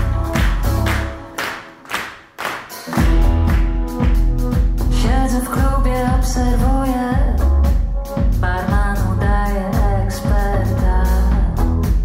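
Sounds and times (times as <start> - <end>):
live pop band: 0.0 - 1.6, 2.7 - 12.0
clap-like hits on the beat: 0.0 - 4.8.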